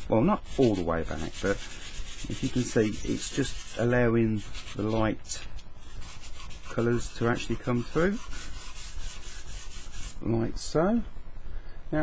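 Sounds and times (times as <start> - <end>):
sanding sponge rubbing wood: 0.0 - 5.0, 5.8 - 10.2.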